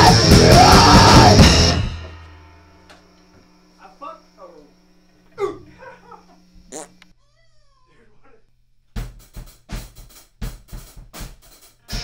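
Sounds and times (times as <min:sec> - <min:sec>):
cat meowing: 0:06.8 - 0:08.0.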